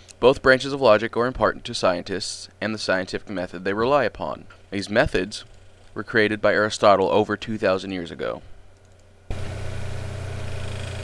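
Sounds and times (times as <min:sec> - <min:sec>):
low hum with hiss: 0:00.0 - 0:11.0.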